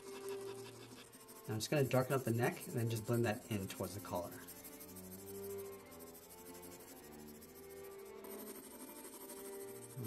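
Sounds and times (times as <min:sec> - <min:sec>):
pencil scratching on paper: 0:00.0 - 0:10.0
soft background music: 0:00.0 - 0:10.0.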